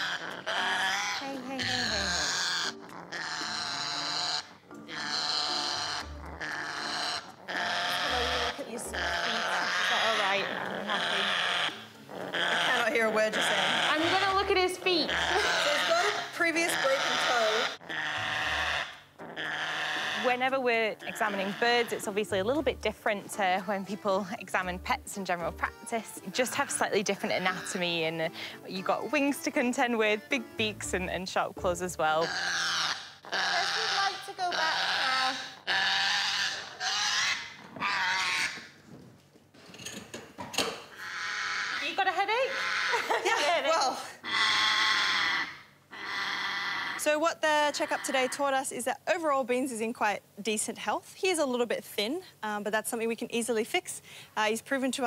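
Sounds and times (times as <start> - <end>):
parrot screeching: 0.0 - 20.4, 21.0 - 22.1, 32.2 - 38.8, 40.9 - 47.1, 47.7 - 48.4.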